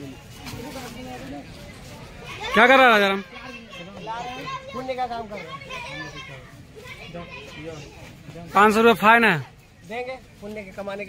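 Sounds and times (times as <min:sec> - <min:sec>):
voices talking and calling: 0:00.0 - 0:11.0.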